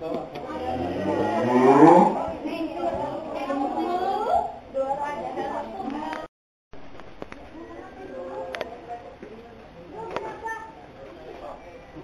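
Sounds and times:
cow mooing: 0.6s - 2.3s.

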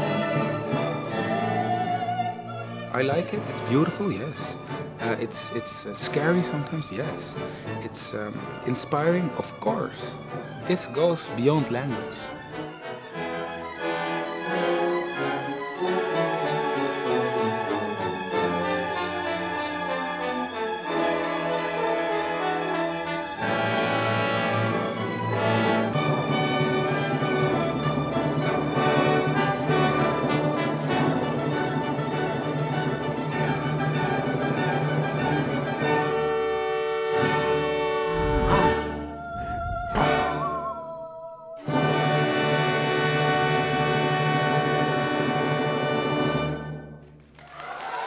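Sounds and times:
orchestral music with strings and brass: 0.0s - 40.7s, 41.6s - 47.2s.

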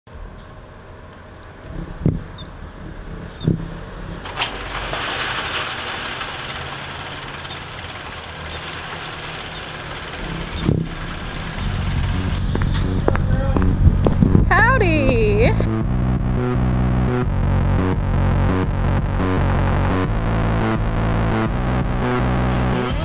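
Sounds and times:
high-pitched alarm beep: 1.4s - 13.2s
gate rumbling: 1.4s - 15.7s.

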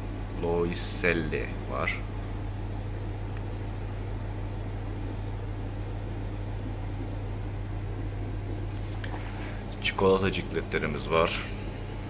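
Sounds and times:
air hissing through filters: 0.0s - 12.0s
air pumps humming: 0.0s - 12.0s.

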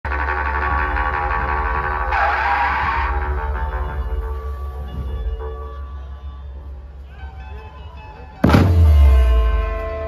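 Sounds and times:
loud band music with heavy bass: 0.0s - 5.9s, 7.2s - 10.0s.

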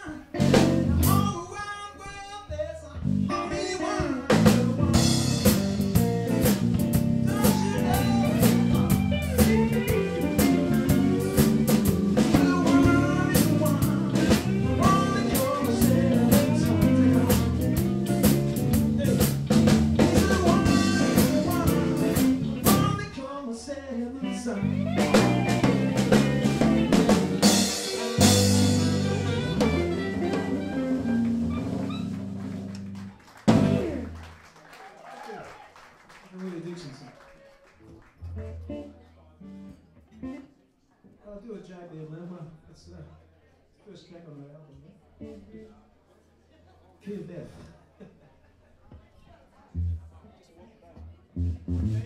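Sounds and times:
blues band playing: 0.0s - 2.3s, 3.0s - 23.2s, 24.2s - 34.4s, 38.2s - 39.8s, 49.8s - 50.1s, 51.2s - 52.0s
man singing into microphone: 0.9s - 5.1s, 7.3s - 17.9s, 20.0s - 25.1s
electric guitar picking: 4.6s - 23.0s, 24.4s - 34.1s, 38.2s - 39.7s, 51.4s - 52.0s.

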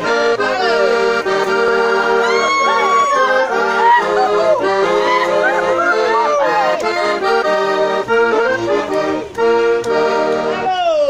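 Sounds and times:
button accordion folk tune: 0.0s - 11.0s
person singing yodel-like: 2.2s - 7.0s.

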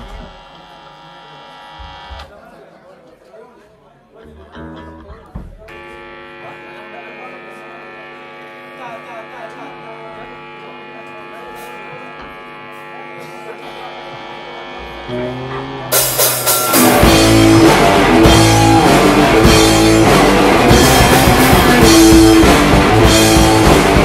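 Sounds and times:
electric guitar drone: 0.0s - 2.3s, 5.7s - 24.0s
bass guitar: 4.2s - 6.0s, 13.9s - 24.0s
rock band playing: 11.5s - 24.0s.

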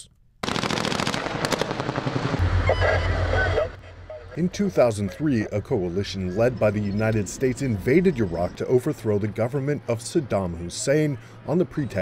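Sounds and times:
rapid automatic gunfire: 0.4s - 2.4s
deep rumble: 1.9s - 7.0s.

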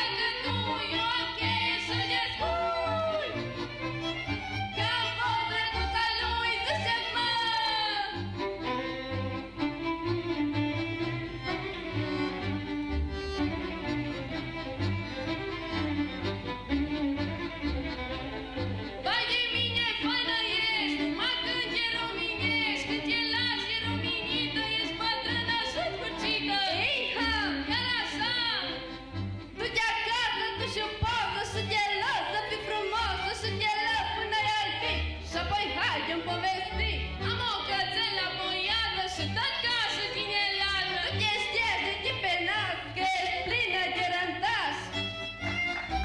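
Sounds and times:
women singing folk song: 0.0s - 3.5s, 4.4s - 8.2s, 19.0s - 28.8s, 29.6s - 44.5s
fiddles playing: 0.0s - 46.0s
violins: 0.0s - 46.0s.

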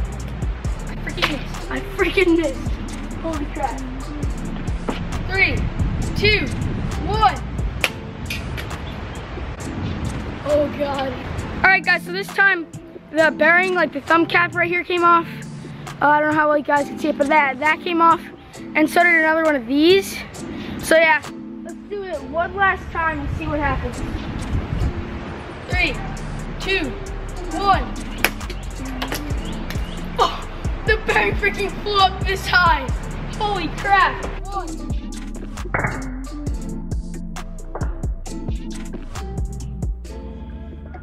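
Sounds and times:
steady low rumble: 0.0s - 13.5s, 22.6s - 41.0s
background music: 0.0s - 41.0s.

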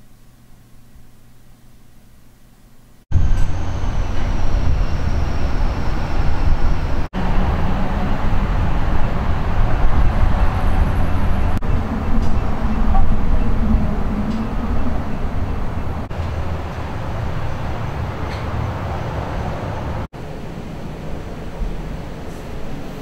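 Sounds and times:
loud low outdoor rumble: 3.1s - 23.0s.

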